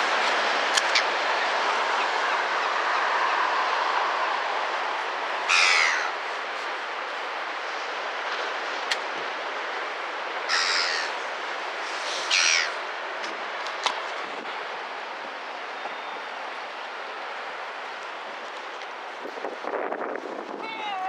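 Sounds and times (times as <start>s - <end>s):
gull calling: 5.5s - 6.2s, 10.5s - 11.2s, 12.3s - 12.8s.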